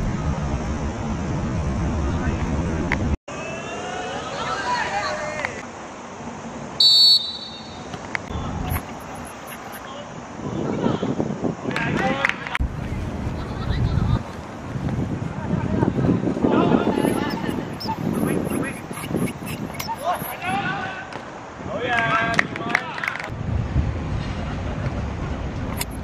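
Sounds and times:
referee's whistle blast: 6.8 - 7.9.

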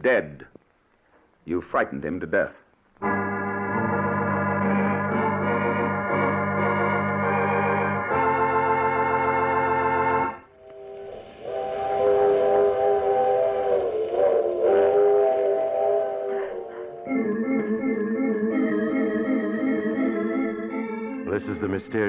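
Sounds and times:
organ chords: 3.0 - 22.0.

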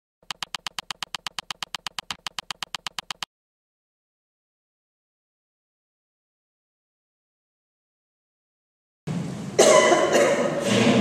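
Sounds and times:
rapid electronic ticking: 0.2 - 3.3.

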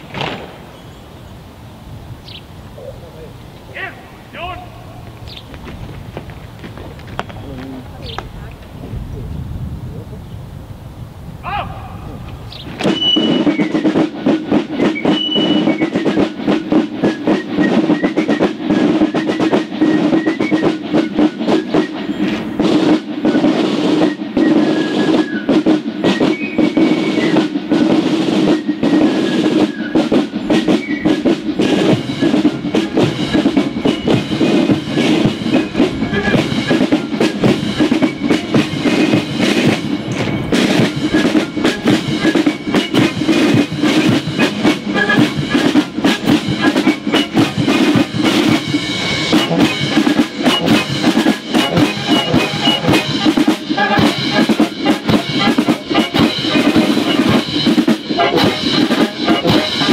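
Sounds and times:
marching band playing: 0.0 - 0.7, 3.1 - 9.0, 11.4 - 59.9
snare drum strokes: 12.2 - 59.9.

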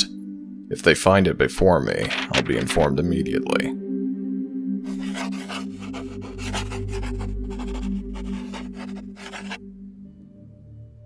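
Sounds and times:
ambient music drone: 0.0 - 11.0
pen scratching on paper: 2.0 - 2.8, 4.9 - 9.6.

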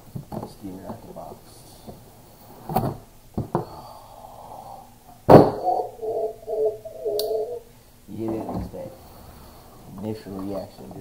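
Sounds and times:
loud thud: 5.3 - 5.6.

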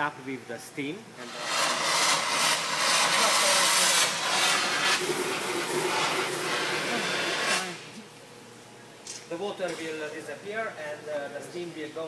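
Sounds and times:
steam hissing from pipe: 1.2 - 7.9.

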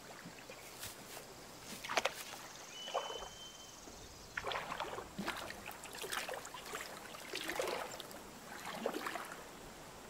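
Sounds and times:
footsteps through dry grass: 0.6 - 2.4.

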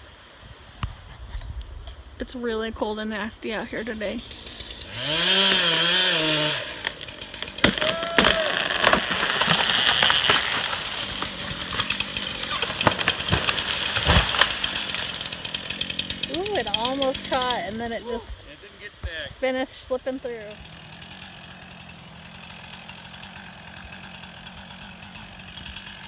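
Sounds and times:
chainsaw cutting brush: 3.6 - 26.0
sharp snaps and cracks: 6.8 - 15.2.

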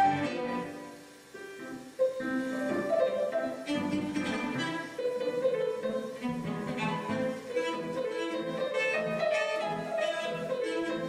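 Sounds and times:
cello and piano chamber music: 0.0 - 11.0.

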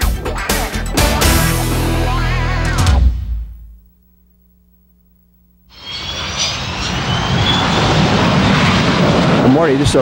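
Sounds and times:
jet engines roaring with whine: 5.7 - 10.0.

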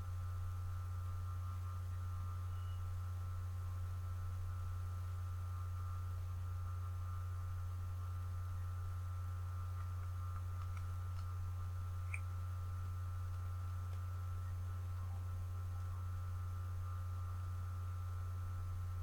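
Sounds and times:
low electrical hum: 0.0 - 19.0
faint high-pitched tones: 0.1 - 7.4, 11.7 - 19.0.

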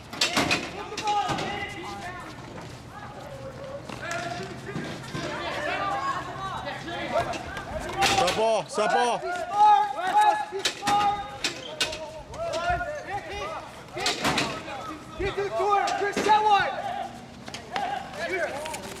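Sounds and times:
players shouting and calling: 0.0 - 19.0.

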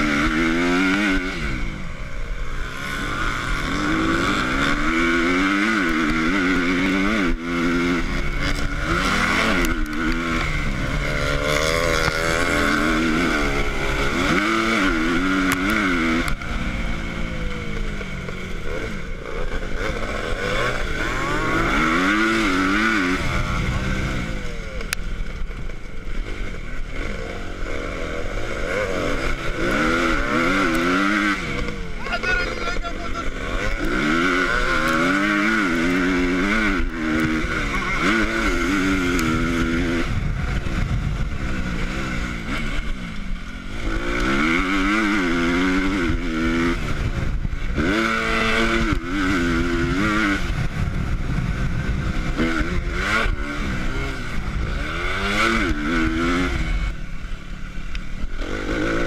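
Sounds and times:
motocross bike engine revving: 0.0 - 59.0.

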